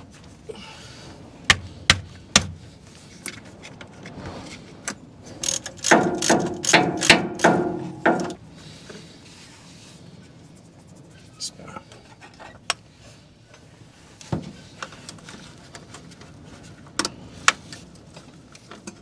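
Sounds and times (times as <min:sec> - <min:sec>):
ratchet spanner clicking: 0:05.4 - 0:07.6
sharp metallic clicks: 0:05.4 - 0:08.4.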